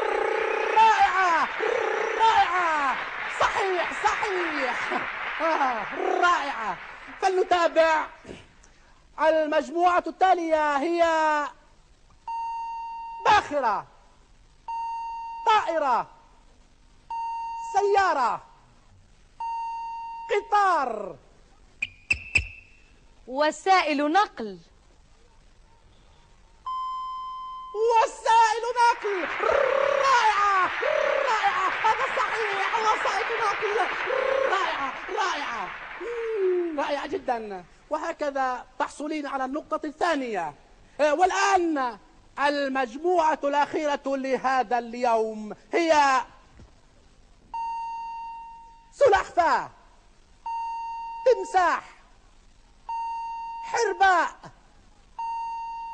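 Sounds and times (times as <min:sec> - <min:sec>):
steady high beep: 0:21.8 - 0:22.9, 0:47.6 - 0:48.9, 0:50.4 - 0:51.2, 0:52.9 - 0:53.7, 0:55.2 - 0:55.9.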